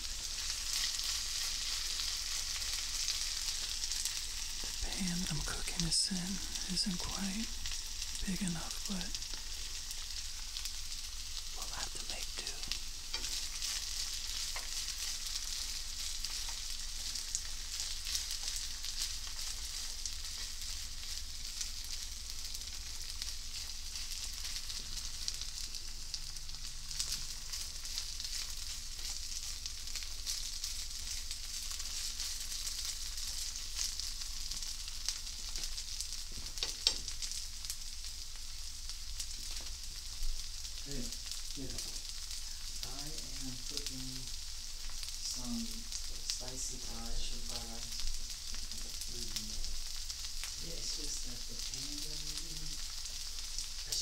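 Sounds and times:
food sizzling in a skillet: 0:00.0 - 0:54.0.

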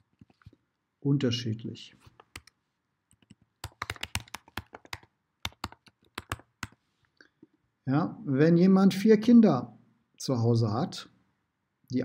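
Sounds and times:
typing on computer keyboard: 0:02.2 - 0:06.8.

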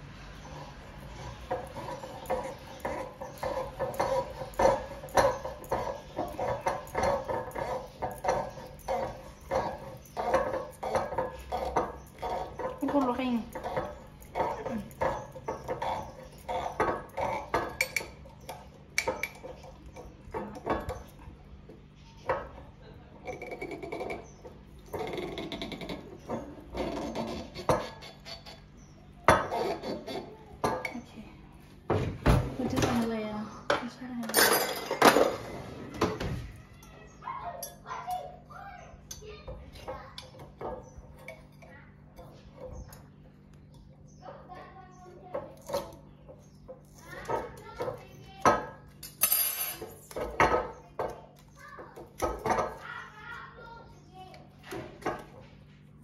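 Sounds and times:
corkscrew squeaking in cork: 0:23.3 - 0:28.7.

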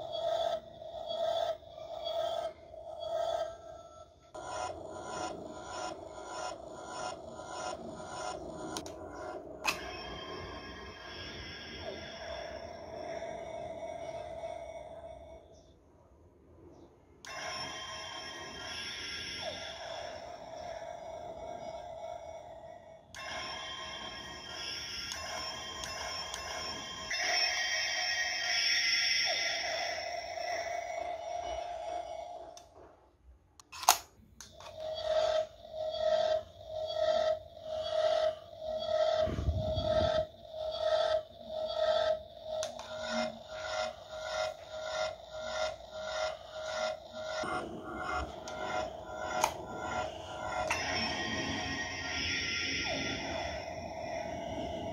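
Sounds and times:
toy electronic sound effects and music: 0:00.0 - 0:15.5, 0:17.2 - 0:32.7, 0:33.8 - 0:54.9
steady electronic beeping: 0:00.0 - 0:15.8, 0:17.2 - 0:32.6, 0:34.4 - 0:54.9.

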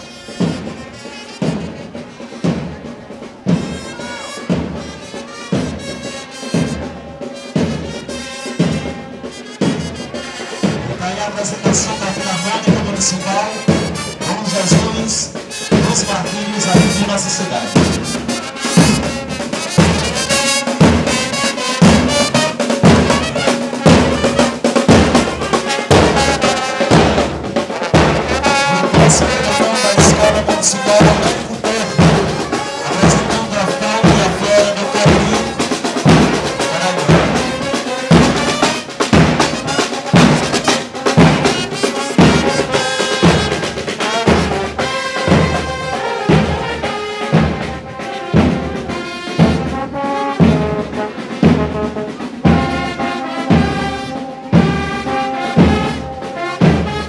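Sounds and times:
trumpets and trombones: 0:00.0 - 0:57.0
bass drums and snares: 0:15.7 - 0:43.7.

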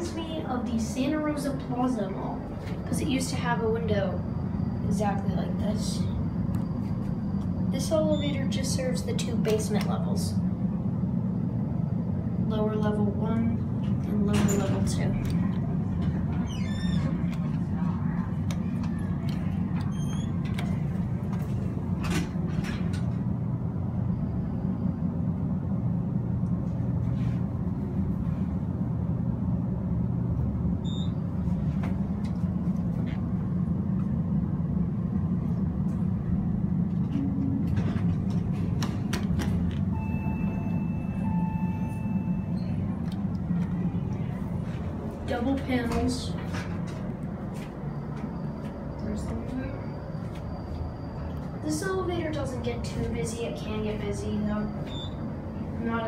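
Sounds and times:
elevator low hum: 0:00.0 - 0:56.0
steady electronic tone: 0:39.9 - 0:43.0.

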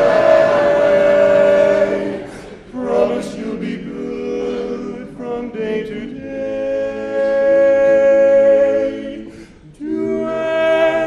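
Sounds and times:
male quartet singing a cappella: 0:00.0 - 0:11.0.

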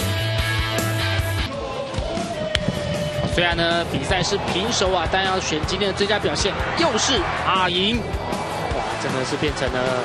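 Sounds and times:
rock music: 0:00.0 - 0:10.0.

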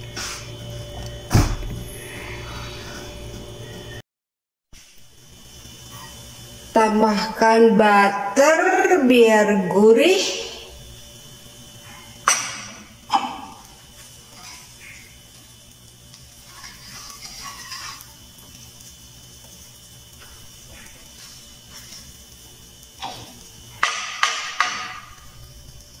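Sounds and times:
wooden spatula knocking in a pan: 0:23.8 - 0:25.1.

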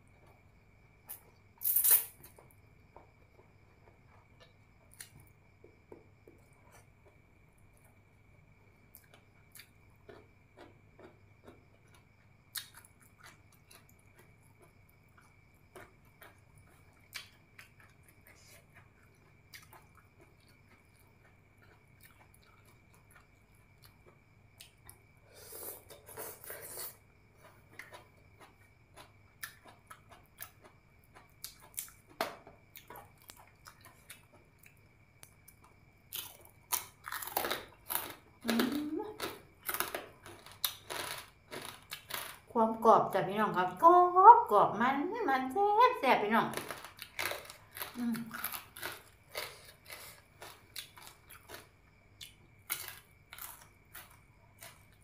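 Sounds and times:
crunchy chewing and biting: 0:08.8 - 0:42.5, 0:46.6 - 0:55.0.

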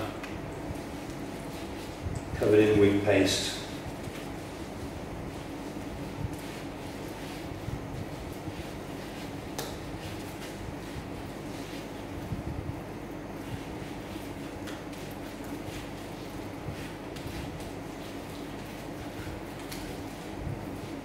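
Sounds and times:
steady room hum: 0:00.0 - 0:21.0
hands rubbing paste rustling: 0:00.1 - 0:21.0.

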